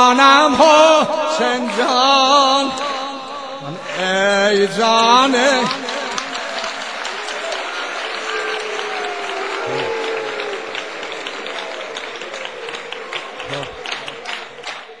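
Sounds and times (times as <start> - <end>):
audience applause: 3.6 - 15.0
voices calling out: 6.1 - 14.8.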